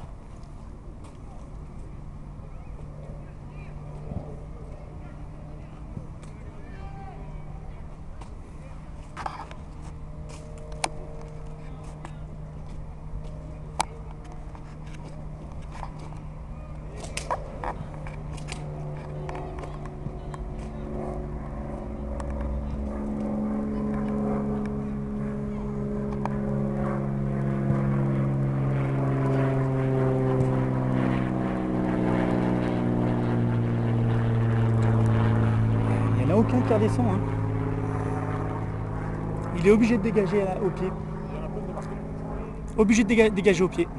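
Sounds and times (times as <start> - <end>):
distant engine drone: 0.0 - 43.9.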